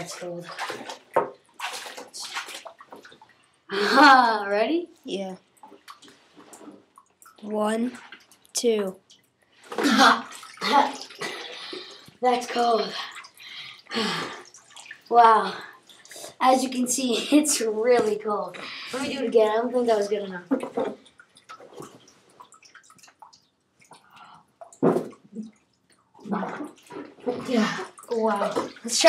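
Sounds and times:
hand splashing water in bucket: 0:00.0 - 0:03.3
water dripping into a bucket: 0:00.0 - 0:03.8, 0:05.3 - 0:16.4, 0:20.3 - 0:29.0.

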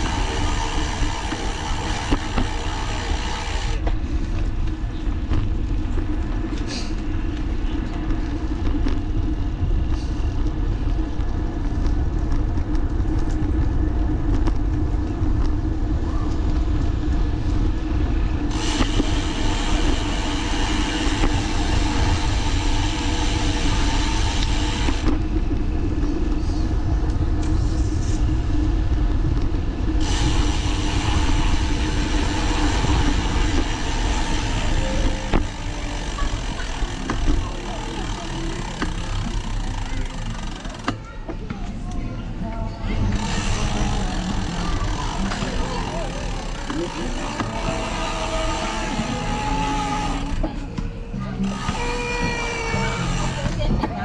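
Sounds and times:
wind buffeting microphone: 0:00.0 - 0:35.5
wheels rolling on pavement: 0:00.0 - 0:54.0.

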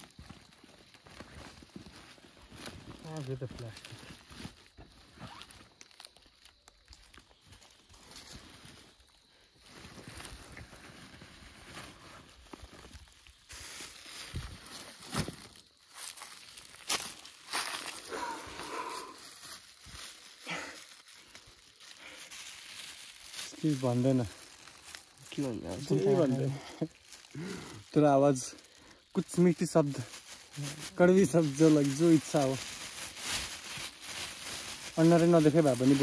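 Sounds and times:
backpack fabric rustling: 0:05.2 - 0:05.4.

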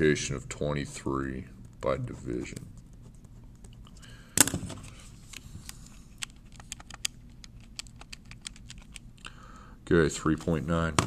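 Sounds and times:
calculator keys clicking: 0:06.2 - 0:09.0.

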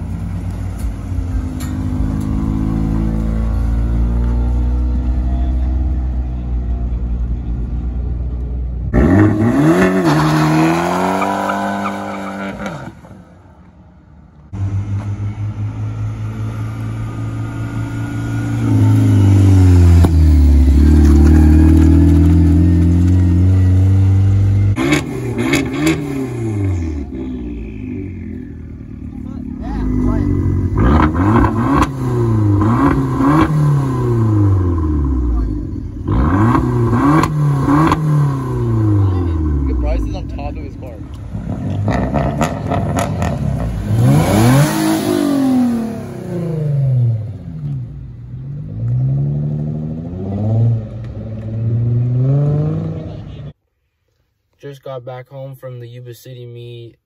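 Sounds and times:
car engine revving: 0:00.0 - 0:06.2, 0:08.8 - 0:13.1, 0:14.5 - 0:53.6.

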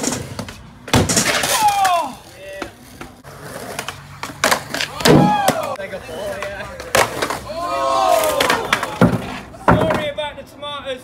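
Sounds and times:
people shouting: 0:01.5 - 0:02.2, 0:04.9 - 0:05.8, 0:07.4 - 0:09.0.

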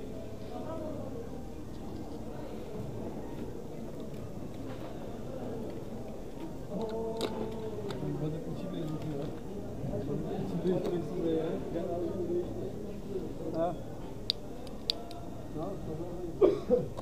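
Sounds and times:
people talking: 0:00.0 - 0:17.0.

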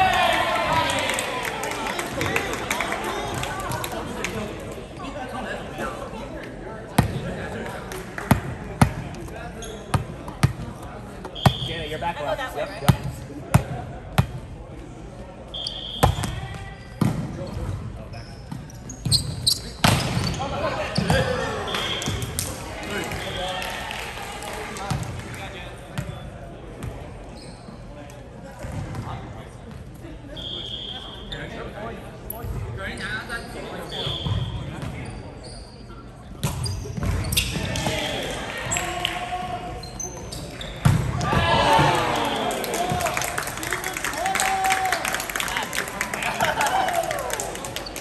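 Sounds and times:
shoes squeaking on hardwood floor: 0:18.2 - 0:20.4.

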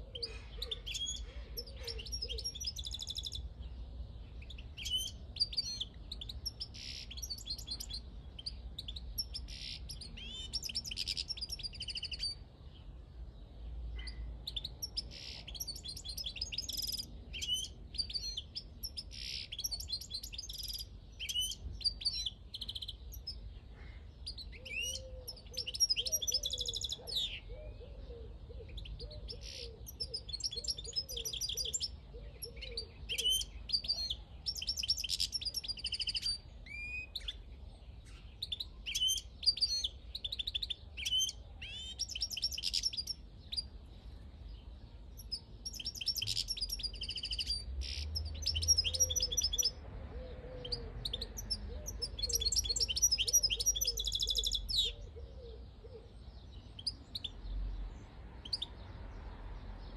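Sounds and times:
goldfinch singing: 0:00.0 - 0:03.5, 0:04.4 - 0:12.4, 0:24.3 - 0:27.5, 0:28.7 - 0:37.4, 0:38.2 - 0:43.7, 0:45.2 - 0:49.8, 0:50.6 - 0:55.1.

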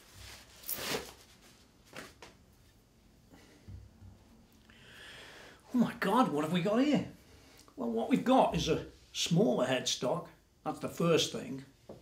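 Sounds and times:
wrapping rustling: 0:00.0 - 0:02.3.

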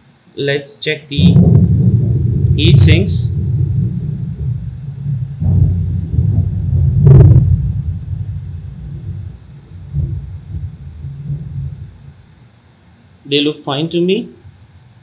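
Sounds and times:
thump: 0:01.2 - 0:12.4
hand rumbling on circuit board: 0:01.2 - 0:12.6.

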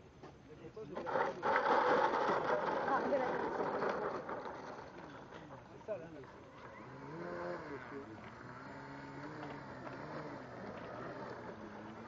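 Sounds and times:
model plane rolling on ground: 0:00.8 - 0:12.0.

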